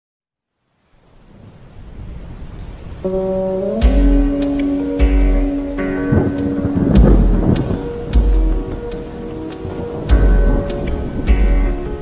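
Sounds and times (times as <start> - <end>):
rain: 0.4 - 12.0
low thunder rumble: 1.3 - 12.0.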